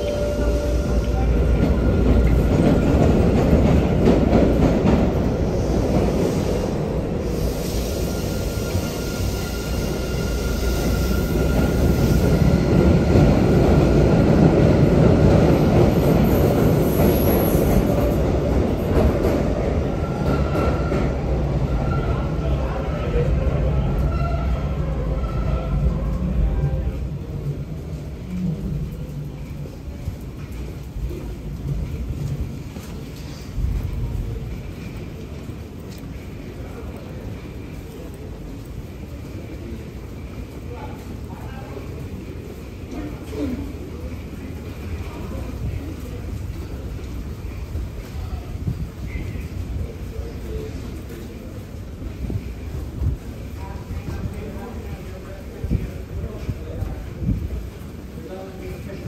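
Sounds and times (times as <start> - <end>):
subway train rumbling: 0.0 - 59.0.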